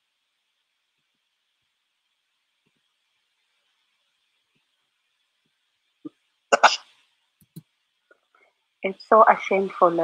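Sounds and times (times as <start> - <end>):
person coughing: 6.6 - 6.8.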